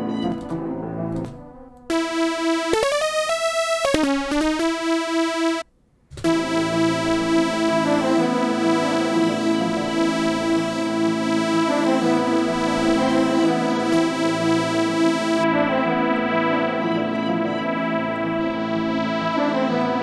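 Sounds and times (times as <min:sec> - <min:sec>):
layered keys and strings melody: 0:00.0 - 0:20.0
synthesizer note sliding in pitch: 0:01.9 - 0:05.6, 0:06.2 - 0:20.0.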